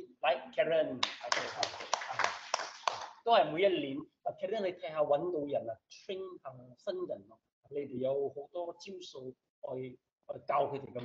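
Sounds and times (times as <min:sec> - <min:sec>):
small group applauding: 0:01.0 - 0:03.2.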